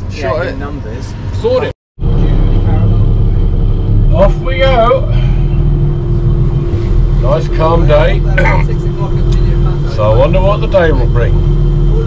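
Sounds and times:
boat engine droning: 0.0 - 12.0
constant hum: 0.0 - 12.0.

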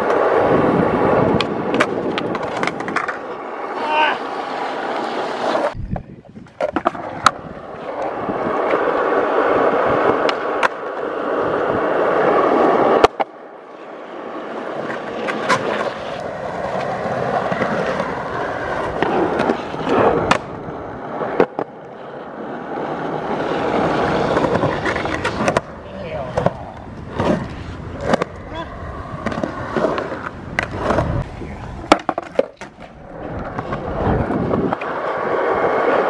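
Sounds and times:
skateboard clacks: 0.0 - 5.8, 6.4 - 13.4, 14.5 - 22.0, 22.8 - 36.0
skateboard wheels rolling on concrete: 0.0 - 36.0.

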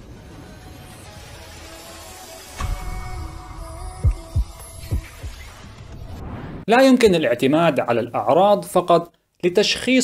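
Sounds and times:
heartbeat thumps: 2.6 - 6.1.

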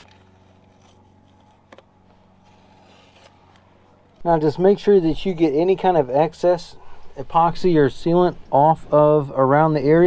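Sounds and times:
tape being peeled off: 0.0 - 4.2
low steady hum: 0.0 - 10.0.

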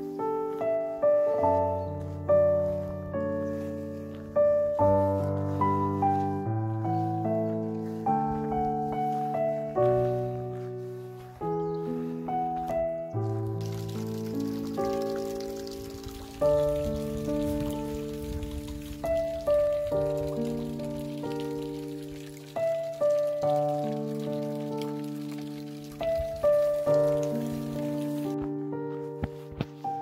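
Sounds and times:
slow calm piano chords: 0.0 - 30.0.

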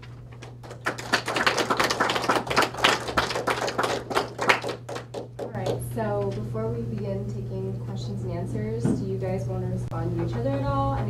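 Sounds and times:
small audience applauding: 0.4 - 5.8.

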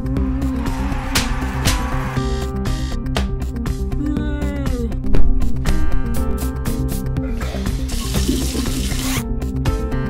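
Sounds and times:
tap water running into sink: 8.0 - 9.0.

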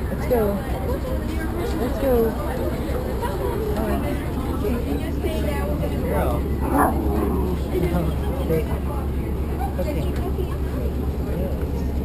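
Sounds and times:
bus engine humming: 0.0 - 12.0
passengers chattering: 0.0 - 12.0.

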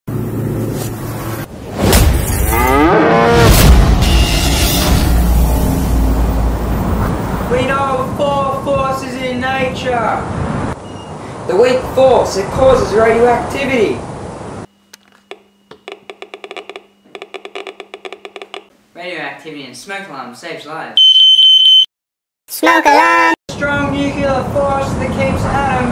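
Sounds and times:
cow mooing: 2.5 - 3.4
geiger counter clicking: 15.3 - 18.7.

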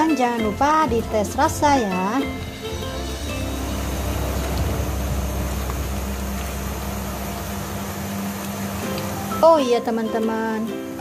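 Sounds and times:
soft background music: 0.0 - 11.0
steady low rumble: 2.3 - 9.3.

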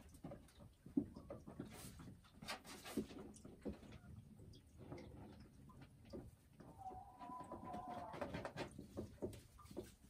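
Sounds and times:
faint rustles and ticks: 0.0 - 6.8, 8.1 - 10.0.

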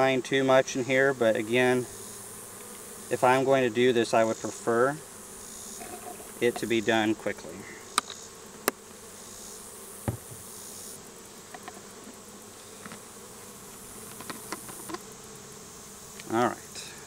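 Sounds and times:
bees buzzing: 0.0 - 17.0.

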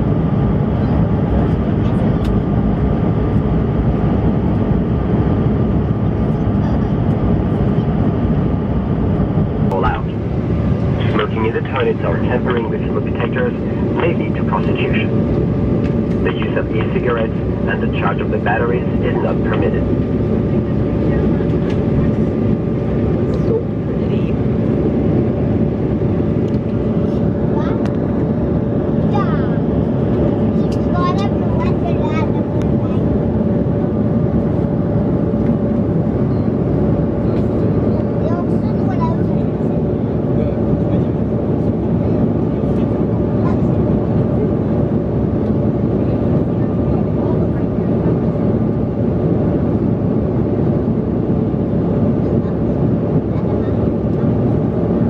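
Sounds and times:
airliner cabin drone: 0.0 - 55.0
faint voices: 10.8 - 15.2, 16.2 - 24.5.

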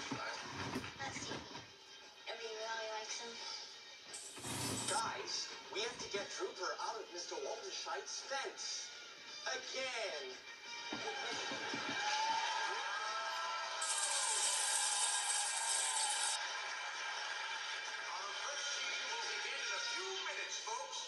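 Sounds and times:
cartoon music from television: 0.0 - 21.0
bright high hiss: 13.8 - 16.4.

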